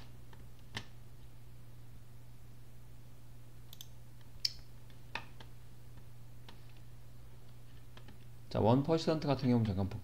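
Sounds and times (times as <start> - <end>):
faint low hum: 0.0 - 10.0
computer mouse clicking: 3.7 - 4.6.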